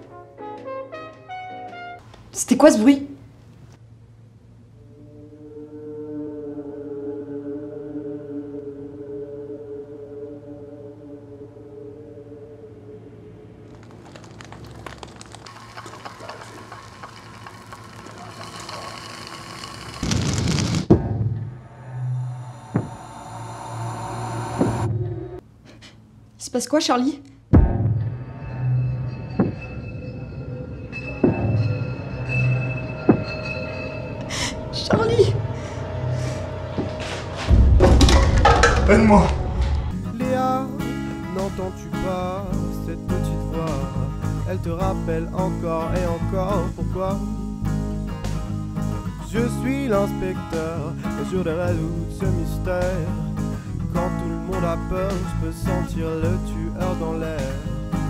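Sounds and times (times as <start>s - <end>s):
low hum: 3.2s - 25.6s, 27.6s - 40.6s
tense film score drone: 3.8s - 25.4s, 27.2s - 40.2s
crackling hissing texture: 13.6s - 20.9s
steady drone: 21.5s - 25.4s, 29.8s - 40.2s
deep low impact rumbling: 37.4s - 40.2s
sudden loud hit: 37.5s - 40.0s.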